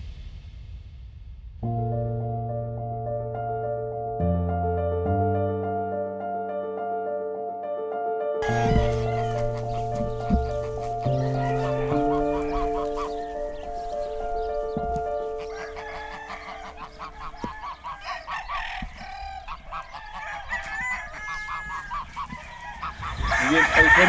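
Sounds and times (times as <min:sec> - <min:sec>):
music: 0:00.0 - 0:18.1
roosters crowing and clucking: 0:08.4 - 0:24.0.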